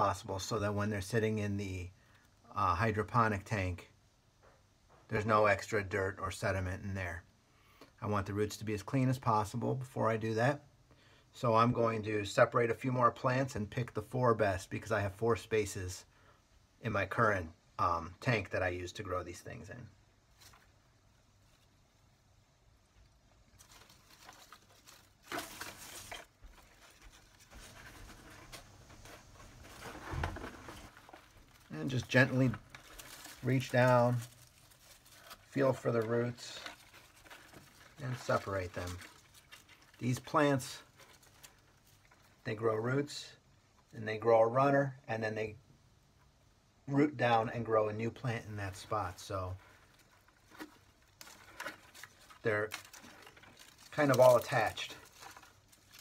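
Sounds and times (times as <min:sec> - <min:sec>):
soil and dry leaves rustling: 0:20.2 - 0:22.0, 0:23.3 - 0:42.6, 0:48.2 - 0:56.0.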